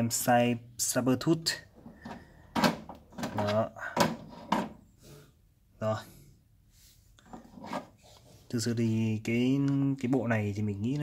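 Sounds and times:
plastic rubbing and scraping: 0:01.7 - 0:04.8, 0:07.2 - 0:08.5.

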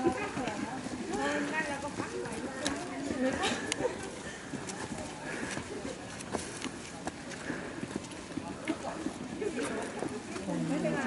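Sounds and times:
crowd murmuring: 0:00.0 - 0:11.0.

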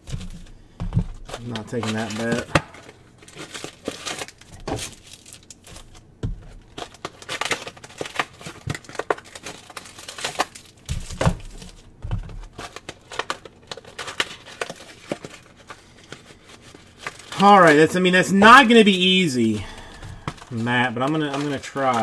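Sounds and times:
plastic wrappers crinkling and tearing: 0:00.0 - 0:22.0.

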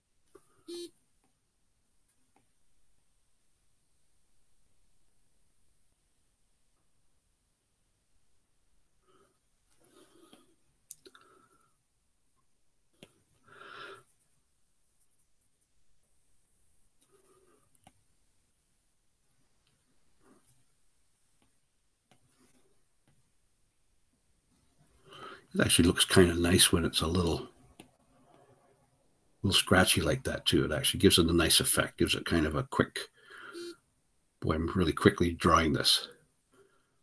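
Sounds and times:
short electronic beep: 0:00.7 - 0:00.9
faint click: 0:09.7 - 0:11.2.

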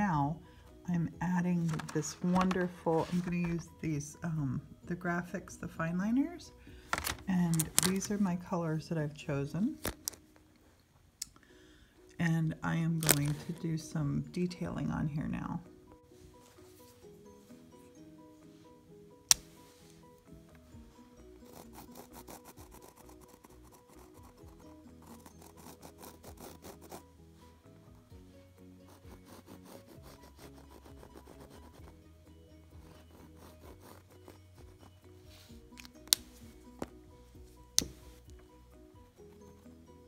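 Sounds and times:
background music: 0:00.0 - 0:40.0
pen scratching on leather: 0:21.4 - 0:27.1, 0:28.8 - 0:32.0, 0:32.7 - 0:36.9.

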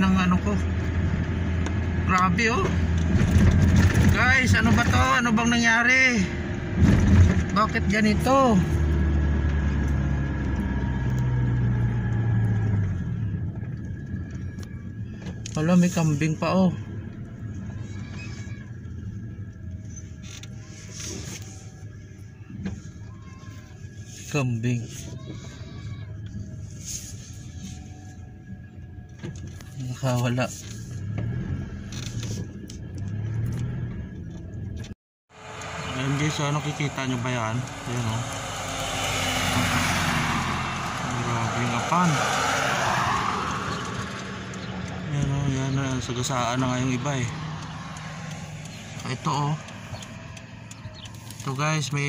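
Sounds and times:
car driving rumble inside cabin: 0:00.0 - 0:52.0.

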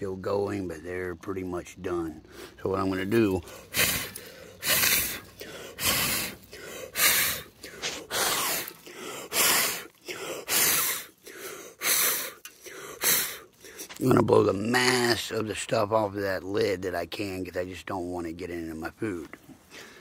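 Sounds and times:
person blowing hard in puffs: 0:03.7 - 0:12.4, 0:13.0 - 0:14.0.

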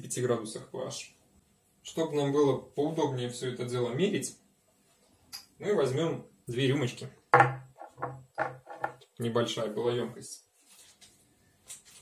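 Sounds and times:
shot glasses knocking on wood: 0:07.4 - 0:09.0.

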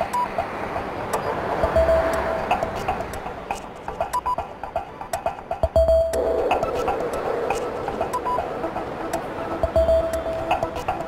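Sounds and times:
clock-like ticks: 0:00.0 - 0:11.0
light electronic tune: 0:01.1 - 0:11.0.

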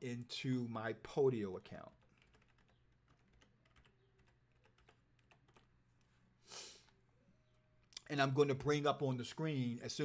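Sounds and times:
typing on computer keyboard: 0:02.0 - 0:05.7.

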